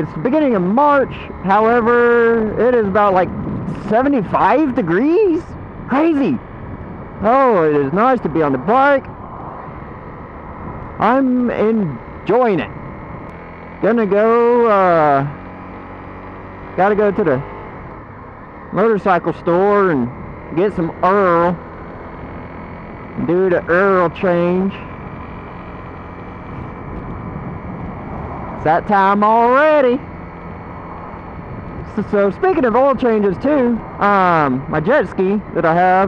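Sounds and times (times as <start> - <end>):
wind rushing across microphone: 0.0 - 16.8, 17.7 - 36.0
motorcycle road noise: 0.0 - 36.0
wind rush: 2.2 - 11.0, 26.1 - 28.8, 30.8 - 32.5.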